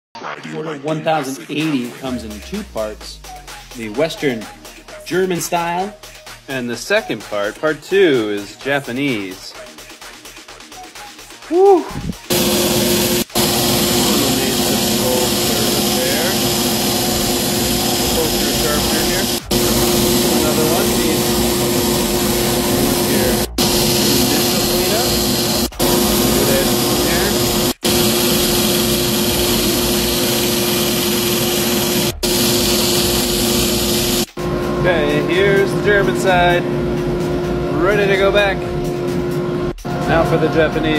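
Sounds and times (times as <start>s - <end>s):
belt grinder motor hum: 12.2s - 40.9s
knife grinding on abrasive belt: 12.3s - 34.4s.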